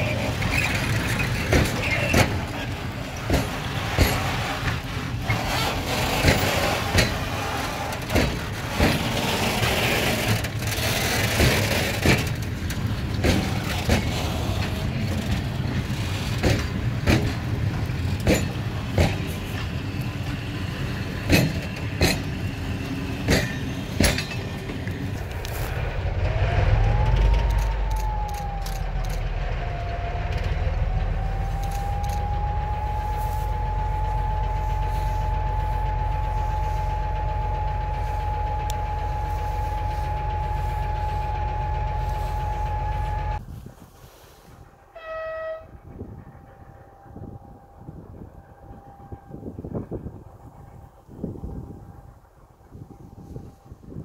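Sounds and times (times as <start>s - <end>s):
wagon wheels clacking over rail joints: 0.0s - 43.4s
diesel locomotive engine rumbling: 0.0s - 54.0s
high whistle: 26.5s - 43.4s
faint horn-like note: 44.9s - 45.8s.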